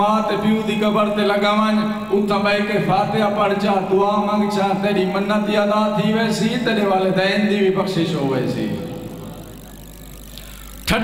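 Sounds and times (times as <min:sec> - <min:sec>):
man's amplified speech: 0:00.0 - 0:09.0
steady low hum: 0:00.0 - 0:11.0.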